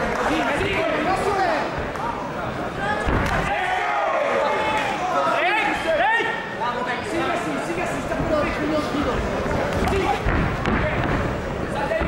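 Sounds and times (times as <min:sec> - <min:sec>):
people shouting: 0:03.2 - 0:06.2.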